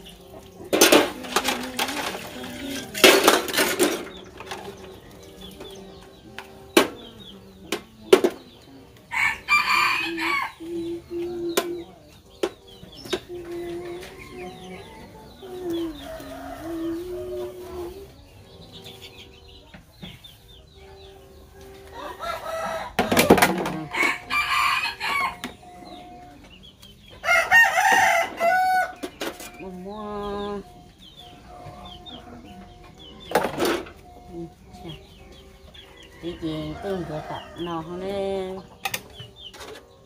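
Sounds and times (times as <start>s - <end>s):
dishes and metal trays clinking: 0.1s - 8.6s, 22.6s - 24.4s
rooster crowing: 9.1s - 10.6s, 13.9s - 18.0s, 20.9s - 26.2s, 27.2s - 29.0s.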